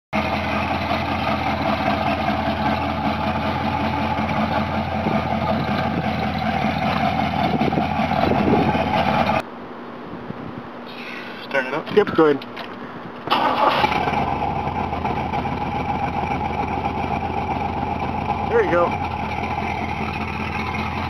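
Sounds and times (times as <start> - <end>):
car engine idling: 0.1 - 9.4, 13.3 - 21.0.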